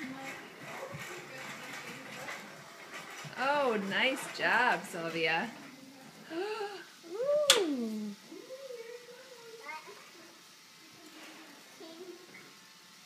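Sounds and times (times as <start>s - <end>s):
toddler babbling: 7.4s - 10.1s.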